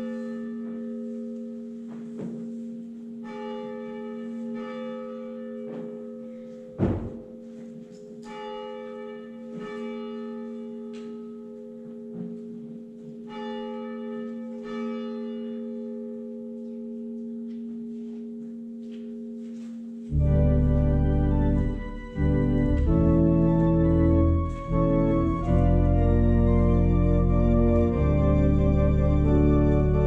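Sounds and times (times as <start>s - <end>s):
church bell ringing: 0.0s - 30.0s
sharp thump: 6.8s - 7.3s.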